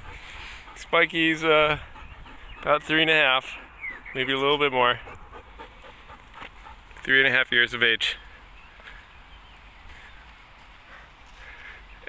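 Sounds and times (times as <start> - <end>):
dog panting quietly: 0.0 - 12.0.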